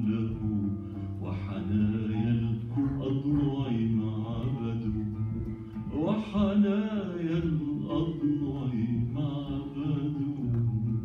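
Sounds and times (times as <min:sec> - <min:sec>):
man singing: 0:00.0 - 0:11.0
oud plucked notes: 0:00.0 - 0:11.0.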